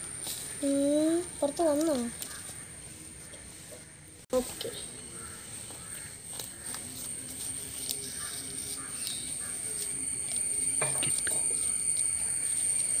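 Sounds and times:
steady high-pitched whine: 0.0 - 13.0
bird calls: 0.4 - 13.0.

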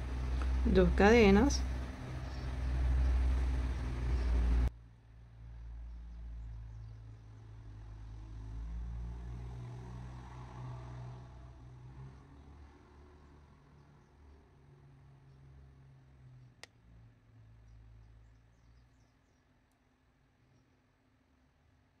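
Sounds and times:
low background rumble: 0.0 - 8.2.

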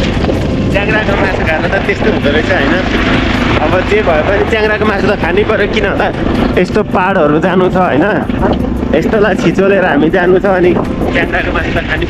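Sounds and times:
motorcycle riding on gravel: 0.0 - 12.0.

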